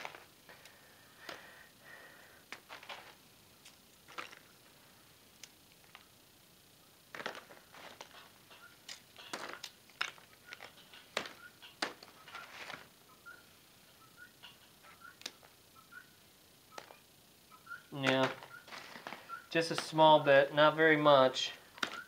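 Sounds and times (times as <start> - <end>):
coal lumps clicking and crunching: 0.0 - 6.2, 7.1 - 13.0, 17.9 - 20.4, 21.3 - 22.0
paper crinkling: 7.1 - 12.9, 18.0 - 20.0.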